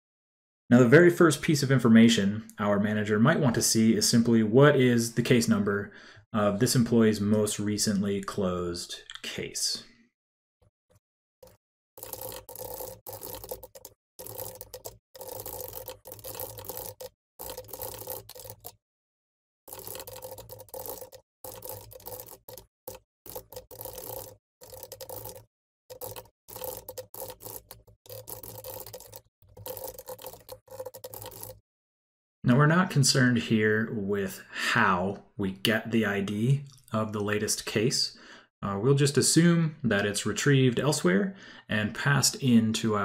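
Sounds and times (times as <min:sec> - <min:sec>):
computer keyboard typing: 0:11.4 - 0:18.8, 0:19.7 - 0:31.6.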